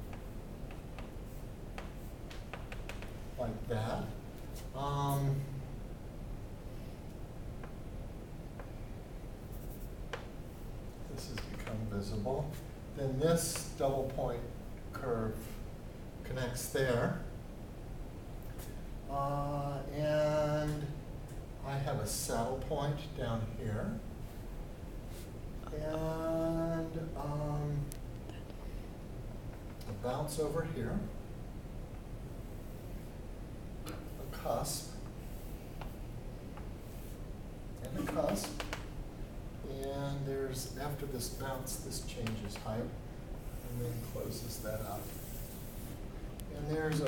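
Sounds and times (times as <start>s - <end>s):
low steady hum: 0.0s - 47.0s
chalk tapping blackboard: 0.1s - 3.2s, 38.0s - 38.9s
chalk scratching blackboard: 9.5s - 9.9s, 43.4s - 46.0s.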